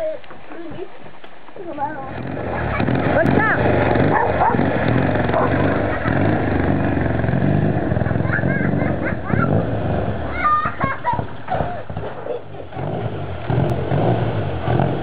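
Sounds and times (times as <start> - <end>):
motorcycle engine running: 1.6 - 15.0
dog barking: 4.0 - 4.7, 5.3 - 5.9.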